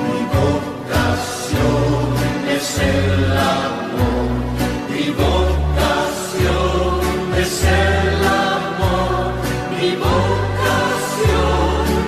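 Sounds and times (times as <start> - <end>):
choir singing with accompaniment: 0.0 - 12.0.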